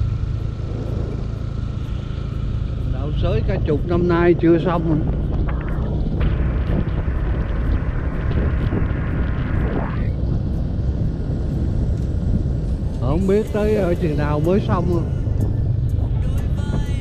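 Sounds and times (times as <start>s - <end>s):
higher hum: 0.0s - 17.0s
motorbike engine rumble: 0.0s - 17.0s
wind buffeting microphone: 0.0s - 17.0s.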